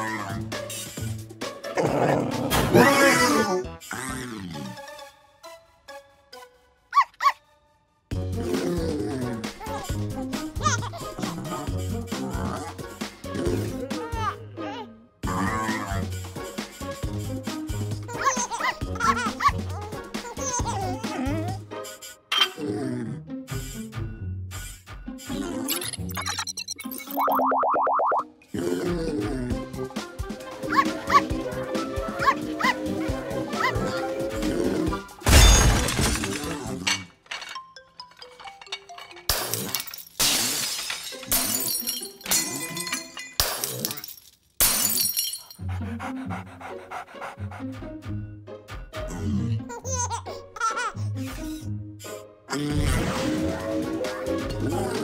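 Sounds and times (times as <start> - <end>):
upbeat cartoon music: 0.0 - 44.0, 45.1 - 55.0
cartoon puppy yipping: 6.9 - 7.5, 18.2 - 21.1, 30.7 - 31.3, 32.2 - 32.8, 33.5 - 34.0.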